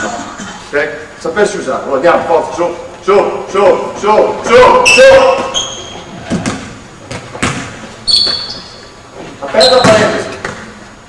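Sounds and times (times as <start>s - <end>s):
basketball bouncing in gym: 5.3s - 8.8s, 9.6s - 10.7s.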